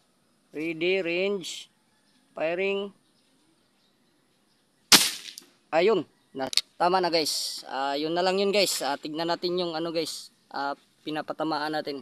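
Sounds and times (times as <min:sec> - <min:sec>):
airgun shot: 0:04.9 - 0:05.5.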